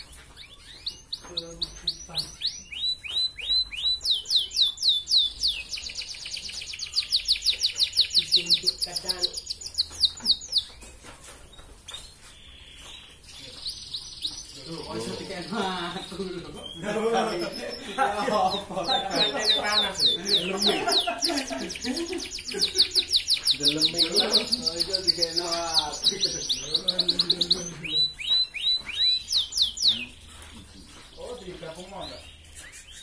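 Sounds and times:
canary singing trill: 0.0s - 33.0s.

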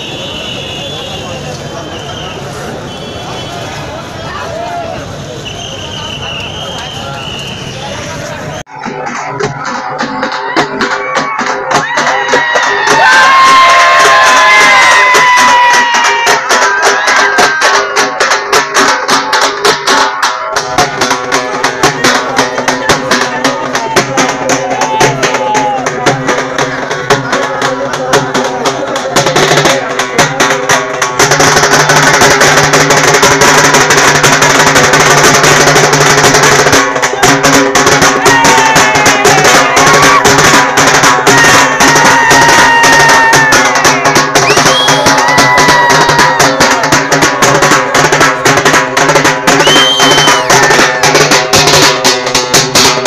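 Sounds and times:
crowd cheering and shouting: 0.0s - 30.6s, 36.9s - 51.9s
procession band drums beating: 8.6s - 53.0s.

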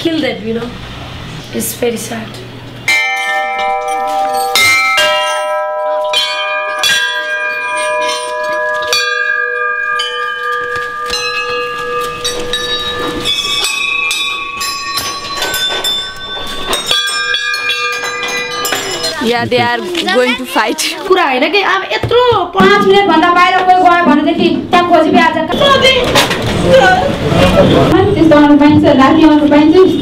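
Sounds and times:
struck bell-like tones: 2.9s - 20.9s.

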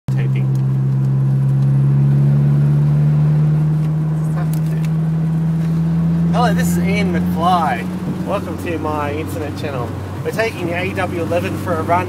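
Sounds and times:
car engine droning: 0.1s - 12.0s
road noise: 0.1s - 12.0s.

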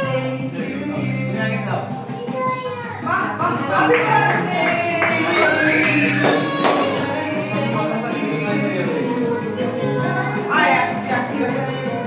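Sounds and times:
people talking and calling out: 0.0s - 12.0s
young child's voice: 2.2s - 3.1s.

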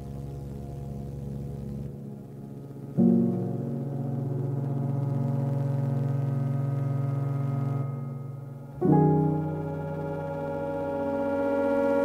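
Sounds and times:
sustained low keyboard chord: 0.0s - 12.0s.

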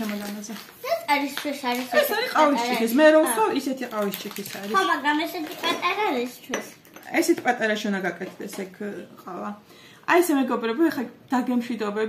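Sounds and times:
woman talking: 0.0s - 0.7s, 1.9s - 4.8s, 7.0s - 12.0s
plastic packet crinkling: 0.0s - 6.4s.

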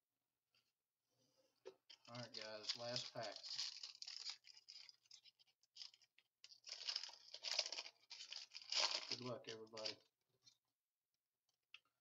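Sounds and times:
foil wrapper tearing and crinkling: 2.0s - 10.0s.

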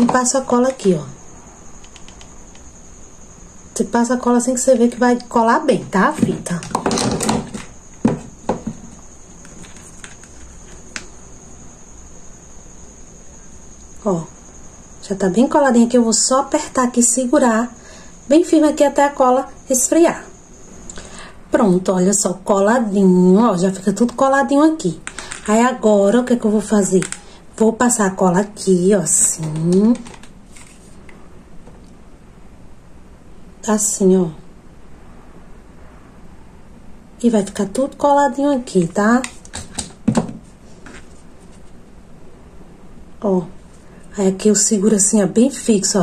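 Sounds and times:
handling noises: 6.0s - 11.2s.

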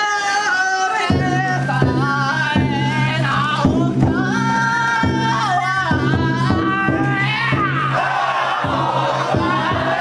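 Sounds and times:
men chanting in unison: 0.0s - 10.0s
sharp beats: 6.0s - 10.0s.

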